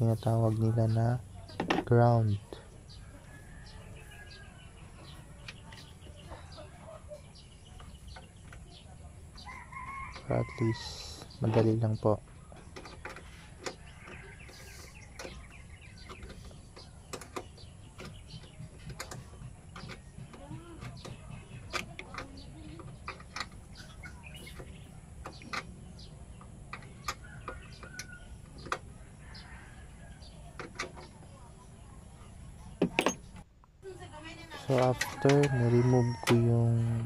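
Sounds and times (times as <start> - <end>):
hands clicking plastic parts: 15.2 - 23.7.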